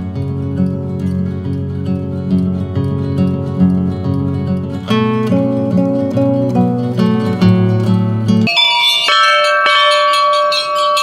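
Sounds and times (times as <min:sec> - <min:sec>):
acoustic guitar music: 0:00.0 - 0:11.0
temple bells ringing: 0:08.4 - 0:11.0.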